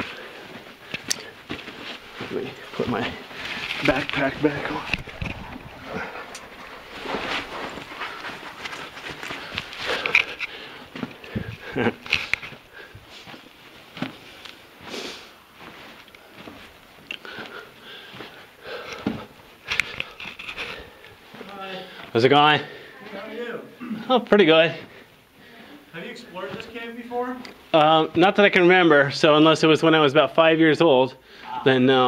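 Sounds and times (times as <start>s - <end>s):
clothing and gear rustling: 0.0s - 28.7s
man breathing hard: 5.0s - 13.4s, 17.1s - 23.1s.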